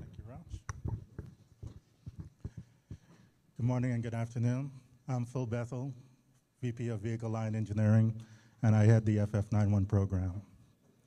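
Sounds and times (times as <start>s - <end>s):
footsteps on stage floor: 0.8s - 3.3s.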